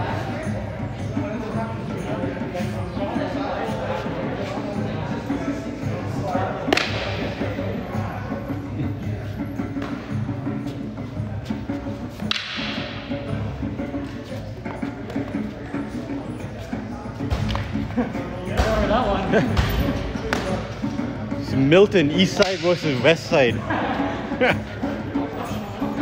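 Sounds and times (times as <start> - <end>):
background music: 0.0 - 26.0
voices: 0.0 - 26.0
wooden sticks striking: 6.7 - 7.4, 12.2 - 13.1, 22.4 - 23.1.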